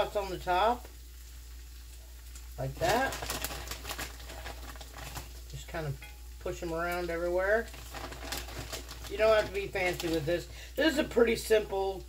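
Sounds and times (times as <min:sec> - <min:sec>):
food sizzling in a skillet: 0:00.0 - 0:12.0.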